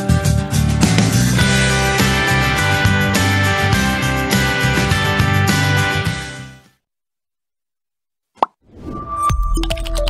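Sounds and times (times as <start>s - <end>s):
jingle music with drum hits: 0.0s - 6.4s.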